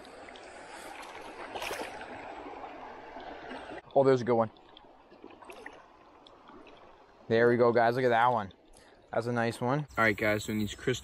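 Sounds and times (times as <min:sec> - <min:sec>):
small water splashes: 0:00.0 - 0:09.2
creek water sloshing: 0:00.0 - 0:09.3.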